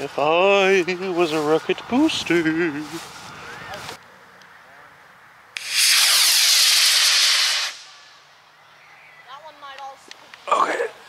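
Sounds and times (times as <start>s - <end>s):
hiss of burning thrust: 5.6s - 8.0s
rocket motor igniting crack: 5.6s - 8.0s.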